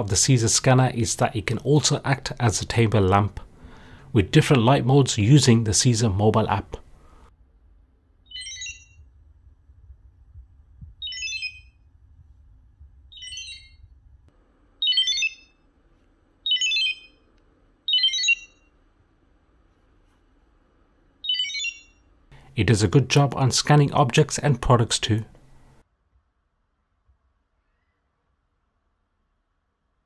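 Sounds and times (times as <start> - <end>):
short high electronic chirp: 13.2 - 13.8.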